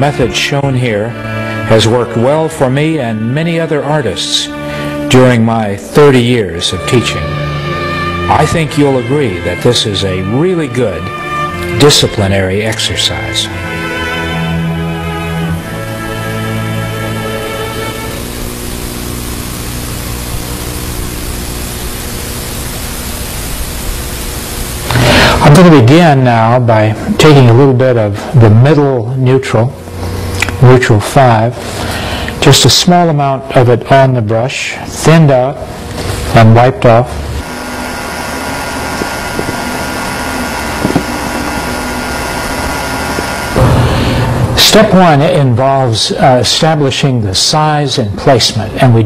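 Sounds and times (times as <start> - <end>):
bowed string music: 0.0 - 18.8
faint hum: 0.0 - 49.0
steady hiss: 0.0 - 49.0.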